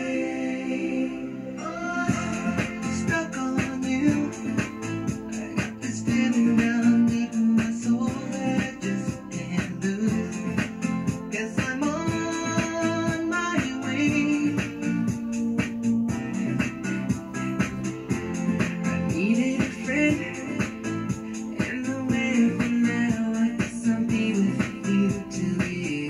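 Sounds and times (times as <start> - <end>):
dance workout music: 0.0 - 26.0.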